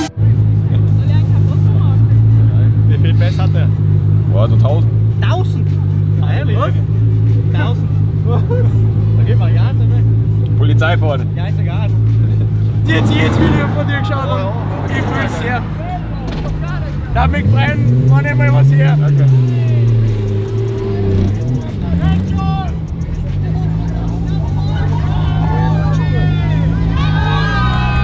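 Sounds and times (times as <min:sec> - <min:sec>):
car engine idling: 0:00.0 - 0:28.0
faint voices: 0:00.0 - 0:28.0.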